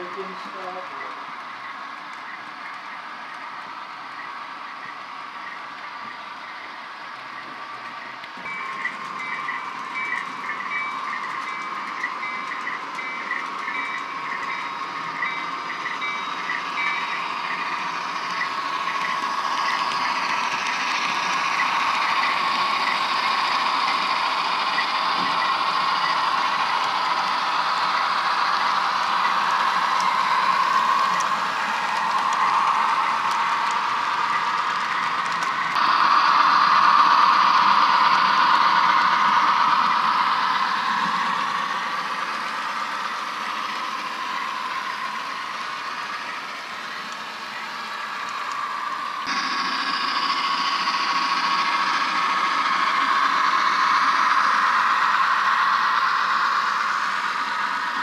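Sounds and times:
model locomotives running on track: 0.0s - 58.0s.

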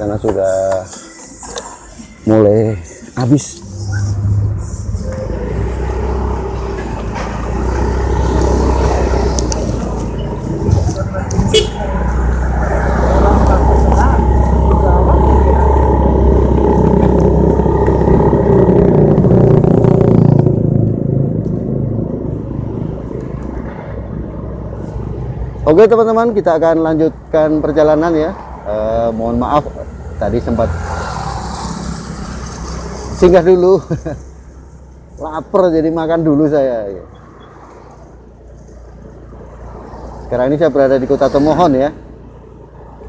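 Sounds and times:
wind and road hiss: 0.0s - 43.0s
motorcycle engine riding: 5.4s - 24.8s.

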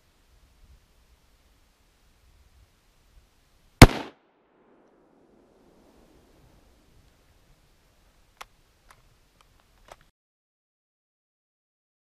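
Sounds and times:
rifle shot with rolling echo: 3.8s - 5.6s.

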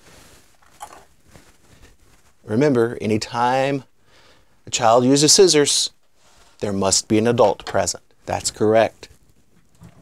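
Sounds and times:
faint handling noise: 0.0s - 2.5s.

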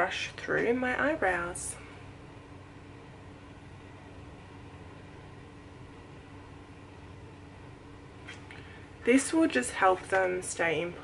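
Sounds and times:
air conditioner hum and hiss: 0.0s - 11.0s.

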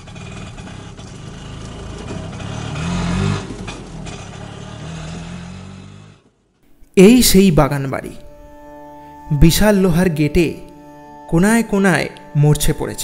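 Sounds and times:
auto-rickshaw engine running: 0.0s - 13.0s.

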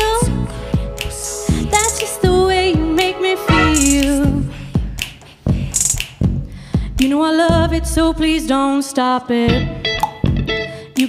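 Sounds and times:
person singing: 0.0s - 4.6s, 7.0s - 11.0s.

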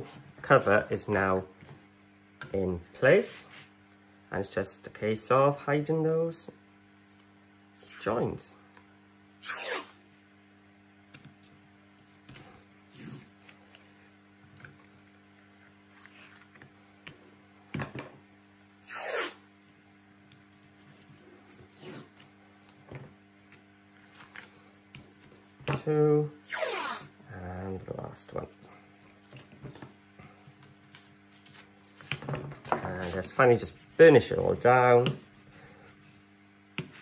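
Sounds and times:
faint steady hum: 0.0s - 37.0s
adhesive tape pulled off roll: 9.4s - 10.0s, 18.8s - 19.5s, 26.4s - 27.1s.

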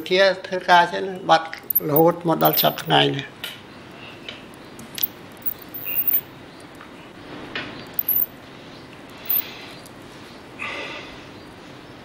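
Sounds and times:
man speaking: 1.8s - 3.1s
background hiss: 9.2s - 9.6s.

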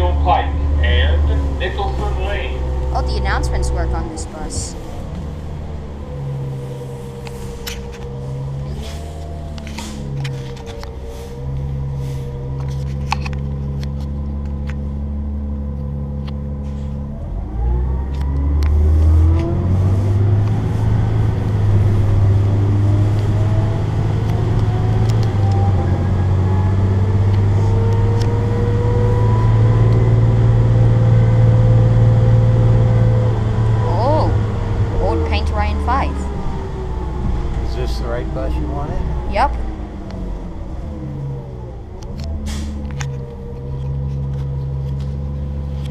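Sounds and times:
bus engine from inside cabin: 0.0s - 45.9s.

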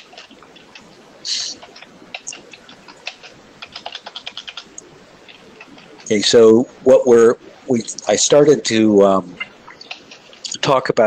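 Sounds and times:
computer keyboard typing: 0.0s - 0.9s, 1.5s - 6.2s, 9.7s - 10.6s
speech: 1.3s - 1.6s, 6.1s - 9.5s, 10.5s - 11.0s.

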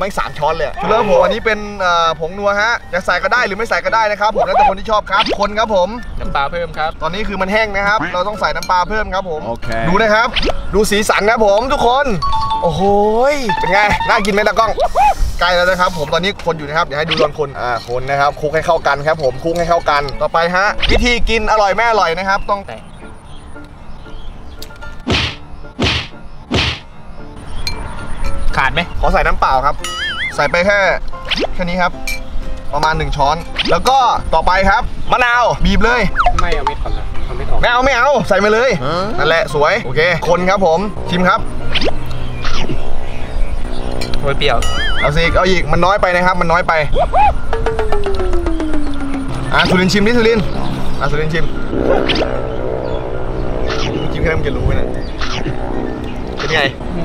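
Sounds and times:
rising and falling tone: 41.4s - 45.5s, 47.0s - 57.0s
long downward sliding tone: 47.1s - 57.0s.

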